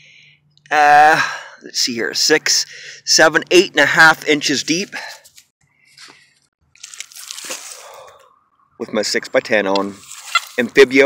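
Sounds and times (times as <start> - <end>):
dry leaves and soil crunching: 4.6 - 8.3, 9.6 - 11.0.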